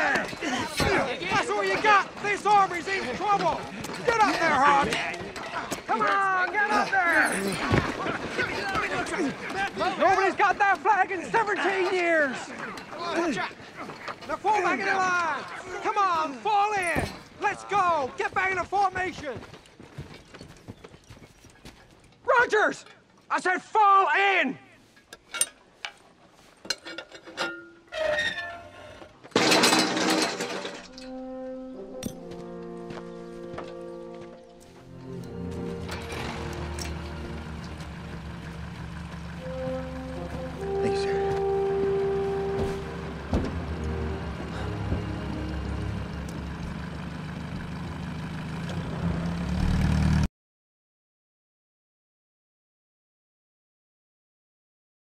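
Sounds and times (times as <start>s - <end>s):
orchestral music with brass: 31.0s - 38.0s, 39.4s - 46.4s.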